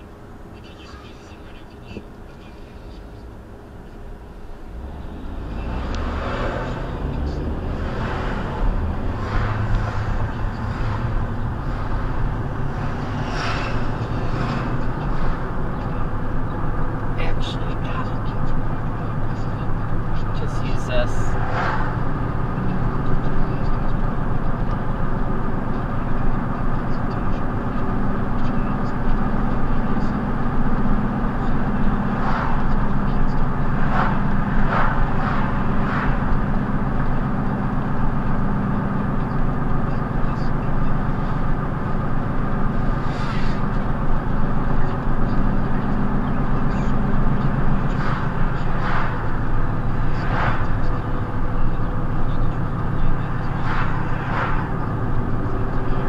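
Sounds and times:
car engine and road rumble: 0.0 - 56.0.

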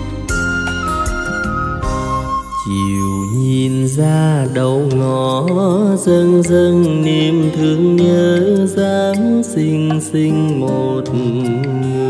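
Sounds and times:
man singing with vibrato: 2.4 - 12.0.

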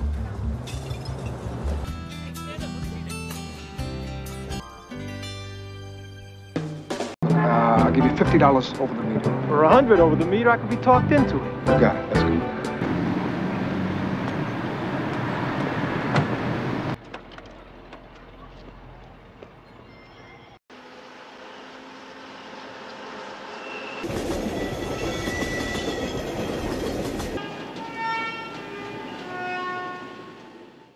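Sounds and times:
city traffic noise: 0.0 - 3.5, 7.2 - 25.5, 26.9 - 30.9
train running through rail yard: 8.8 - 30.9.

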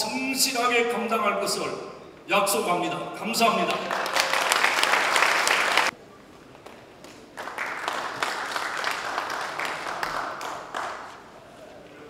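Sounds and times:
audience applause: 3.6 - 5.9, 7.4 - 11.4.

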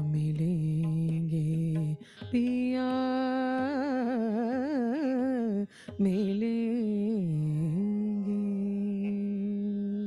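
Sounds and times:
solo voice singing ornamented notes: 0.0 - 10.0.

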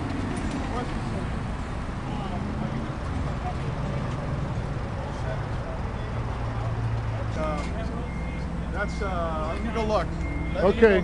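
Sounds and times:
reversing beeper: 7.5 - 11.0.

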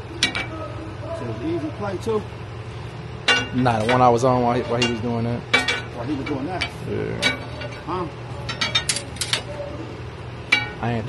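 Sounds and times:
tire irons clinking on metal rim: 0.0 - 2.2, 3.2 - 9.6, 10.4 - 11.0
steady low hum: 0.0 - 11.0.

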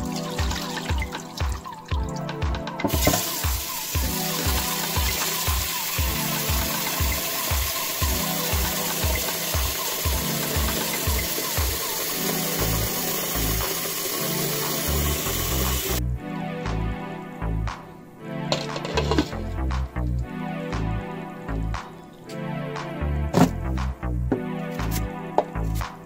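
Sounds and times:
tap water running into pot: 0.0 - 2.1, 2.8 - 16.0
background music with steady beat: 0.0 - 26.0.

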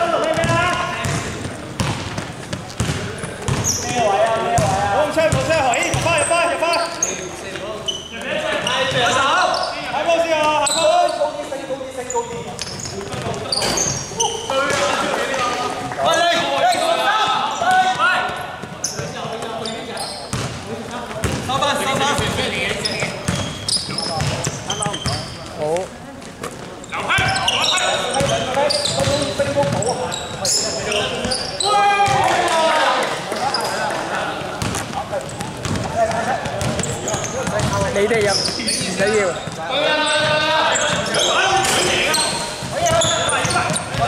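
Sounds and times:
players calling and shouting: 0.0 - 44.0
basketball dribbling on hardwood: 0.3 - 3.6, 34.6 - 38.5.

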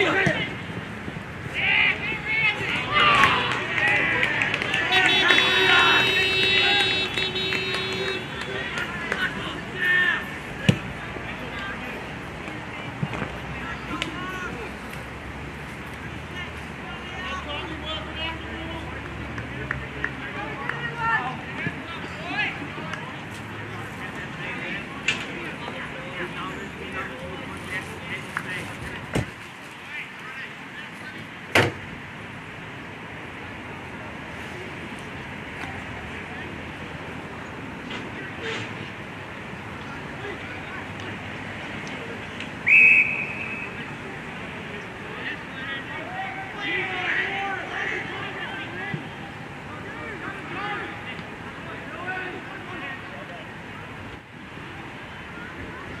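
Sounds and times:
faint distant voices: 0.0 - 56.0
open-air background noise: 0.0 - 56.0
people shouting: 1.5 - 10.2.

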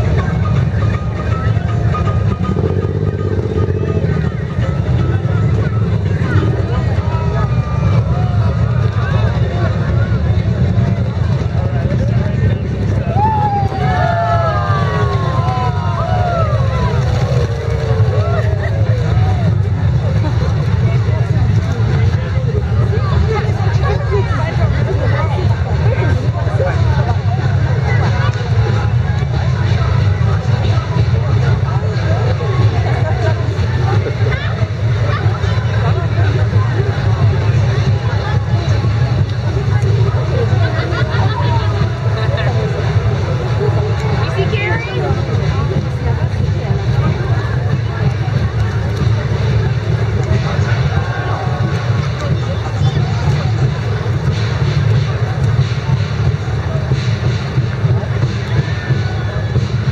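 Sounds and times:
crowd voices and calls: 0.0 - 59.9
passing vehicle engines rumbling: 0.0 - 59.9.

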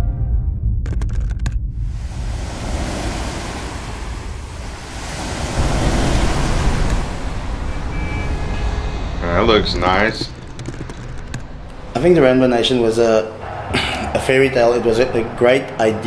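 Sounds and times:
ocean surf washing onto beach: 1.9 - 8.6.

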